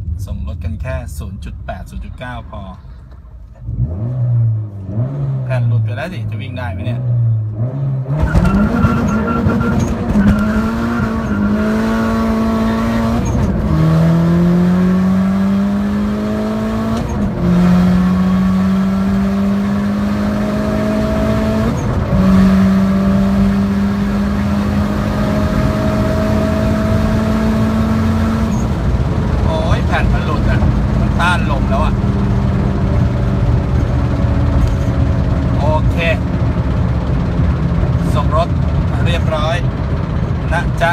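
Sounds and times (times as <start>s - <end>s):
car engine accelerating through gears: 3.5s - 5.8s, 7.0s - 40.9s.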